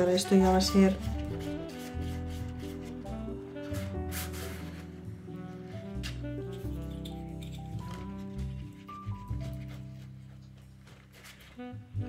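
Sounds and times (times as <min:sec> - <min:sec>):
glue stick scraping paper: 0:00.0 - 0:12.0
background music with beat: 0:01.0 - 0:10.2.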